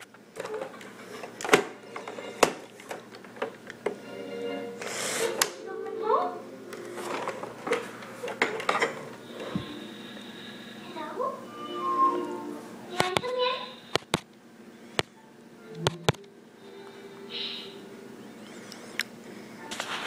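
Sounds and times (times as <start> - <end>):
television voices: 0.4 - 20.0
television music: 1.6 - 14.1, 15.0 - 20.0.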